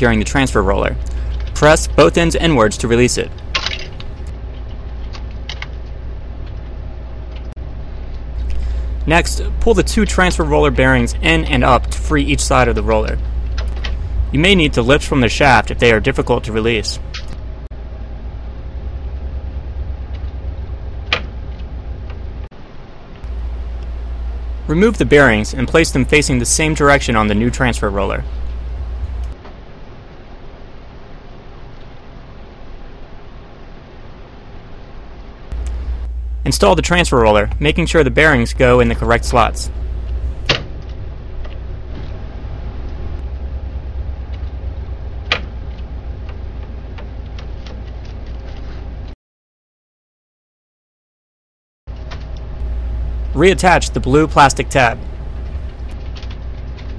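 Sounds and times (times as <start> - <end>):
steady low hum: 0.0 - 34.3, 34.9 - 49.2, 51.9 - 56.9.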